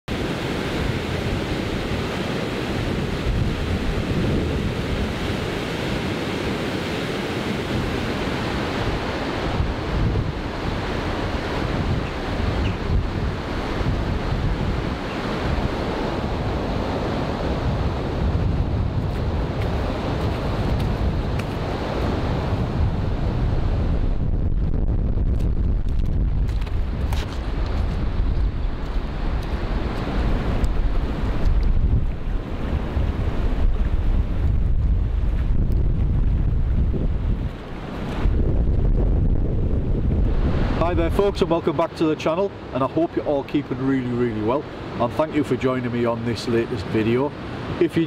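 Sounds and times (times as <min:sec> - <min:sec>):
rushing water: 0:00.1 - 0:24.2, 0:25.4 - 0:39.0, 0:39.6 - 0:48.0
wind buffeting microphone: 0:00.1 - 0:45.6.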